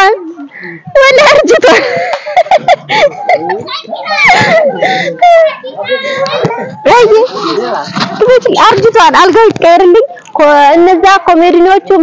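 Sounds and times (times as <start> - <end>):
child talking and calling out: 3.6 - 7.3.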